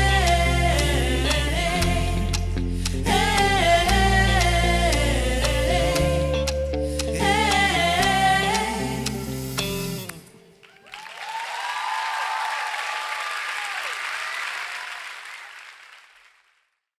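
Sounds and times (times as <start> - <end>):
audience applause and cheering: 10.6 - 16.6.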